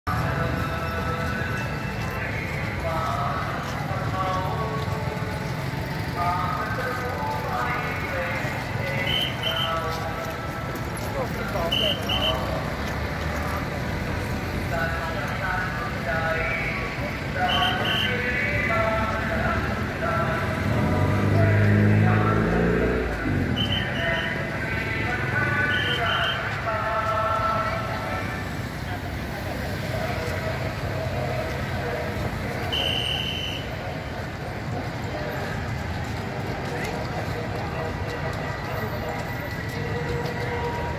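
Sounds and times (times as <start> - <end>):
vehicle engine passing by: 18.8 - 25.8.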